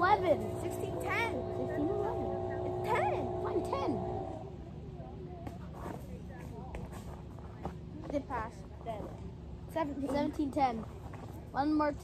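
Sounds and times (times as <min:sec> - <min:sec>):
faint voices: 0:00.0 - 0:11.6.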